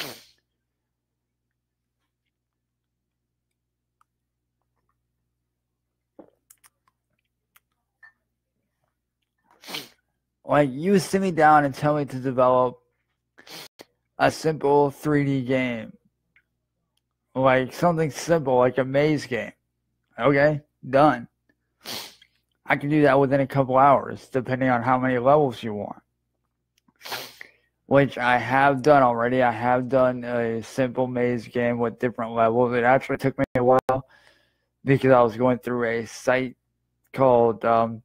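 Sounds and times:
person sneezing: 0:00.0 - 0:00.4, 0:09.6 - 0:10.0, 0:27.0 - 0:27.5.

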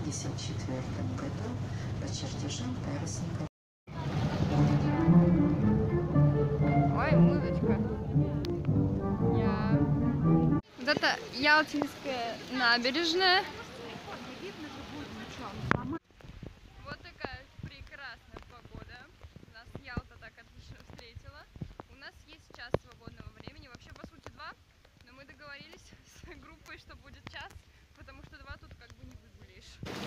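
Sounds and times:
slow music with held low notes: 0:04.4 - 0:10.6
woman talking: 0:06.8 - 0:08.6, 0:09.3 - 0:09.9, 0:10.7 - 0:16.0, 0:16.7 - 0:29.8
wind rumble on microphone: 0:15.5 - 0:24.0.

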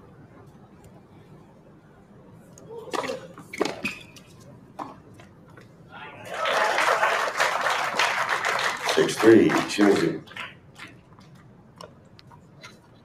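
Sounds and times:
spectators applauding: 0:06.3 - 0:11.0.

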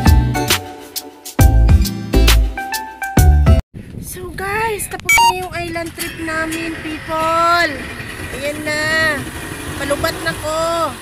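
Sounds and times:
woman speaking: 0:04.1 - 0:07.8
motorboat engine running: 0:05.9 - 0:11.0.

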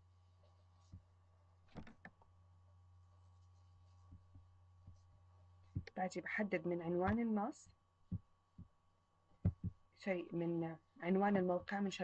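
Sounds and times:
computer mouse clicking and thumping: 0:01.7 - 0:02.3, 0:05.7 - 0:06.0, 0:07.0 - 0:07.3, 0:09.4 - 0:09.8.

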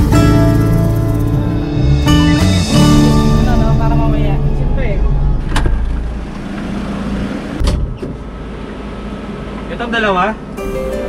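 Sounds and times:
background music: 0:00.0 - 0:05.7, 0:10.6 - 0:11.0
van engine and road rumble: 0:00.0 - 0:11.0.

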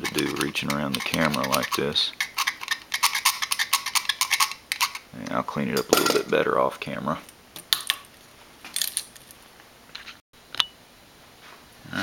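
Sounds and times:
knife blade scraping metal: 0:00.0 - 0:05.0.

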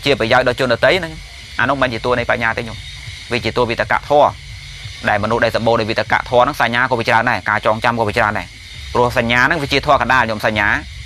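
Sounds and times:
man speaking: 0:00.0 - 0:10.9
faint steady hiss: 0:00.0 - 0:11.0.

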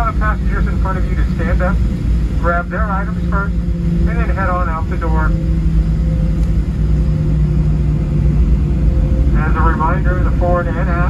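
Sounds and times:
airplane cabin rumble: 0:00.0 - 0:11.0
jet engines idling hum: 0:00.0 - 0:11.0.

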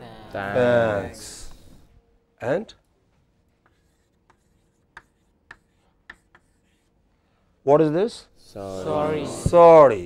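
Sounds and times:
chalk tapping and scraping on blackboard: 0:03.4 - 0:07.0.

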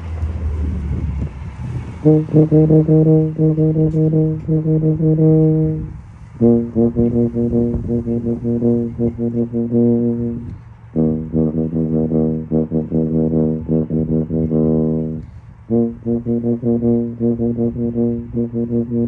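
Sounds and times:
tuba playing fast detached notes: 0:02.0 - 0:19.0.

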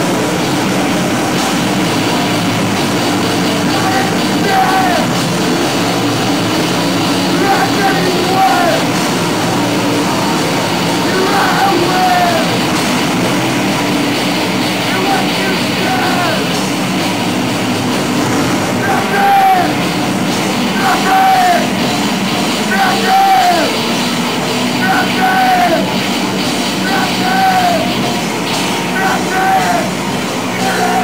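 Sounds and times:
rock band playing: 0:00.0 - 0:31.0.

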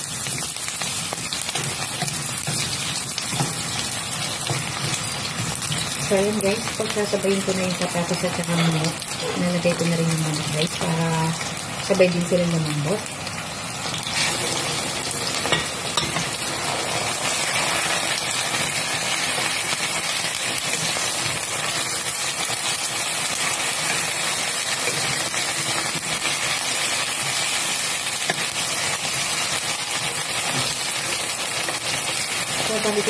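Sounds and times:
chicken sizzling in a pan: 0:00.0 - 0:33.0.

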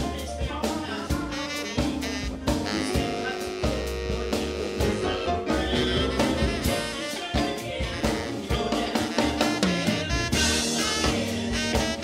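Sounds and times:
drum kit beat: 0:00.0 - 0:12.0
live band playing: 0:00.0 - 0:12.0.

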